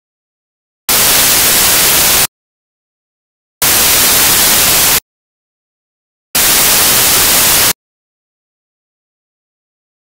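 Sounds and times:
white-noise static hiss: 0.9 - 2.3, 3.6 - 5.0, 6.4 - 7.8.

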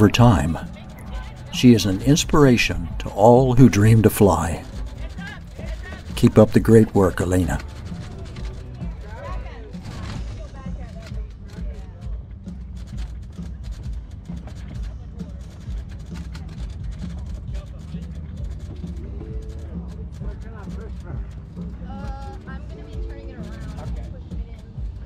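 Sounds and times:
voices: 0.0 - 12.1, 17.0 - 25.0
background music: 0.0 - 25.0.

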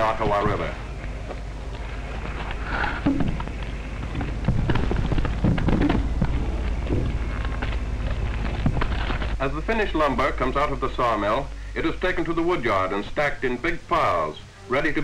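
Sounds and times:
rough noisy rumble: 0.0 - 15.0
steady low hum: 0.0 - 15.0
wood knocks and clatter: 3.0 - 9.4.

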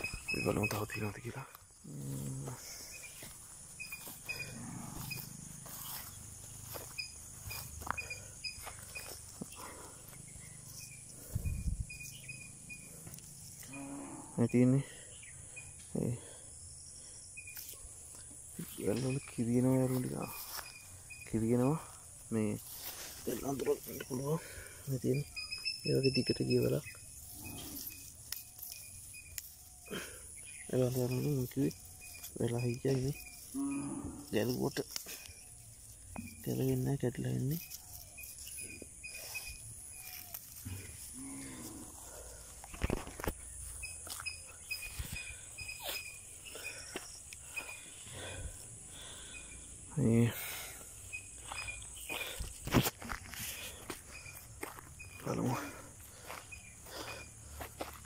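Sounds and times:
footsteps on grass and dirt: 0.0 - 13.6, 17.6 - 25.3, 26.7 - 48.7, 50.7 - 58.0
high chirps: 0.0 - 21.8, 23.3 - 42.0, 43.3 - 52.6
man speaking: 0.3 - 2.9, 18.6 - 20.5, 21.3 - 22.6, 23.2 - 25.3, 25.9 - 26.8, 30.7 - 31.8, 32.4 - 33.2, 36.4 - 37.6, 49.9 - 50.6, 55.2 - 55.9.

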